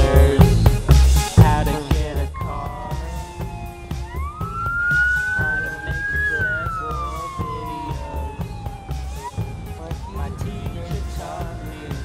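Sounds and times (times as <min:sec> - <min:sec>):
music with heavy bass: 0:00.0 - 0:12.0
siren wailing: 0:02.4 - 0:12.0.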